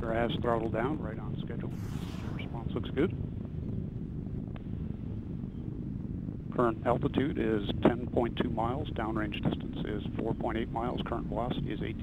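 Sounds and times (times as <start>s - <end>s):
rocket engine rumble: 1.1s - 12.0s.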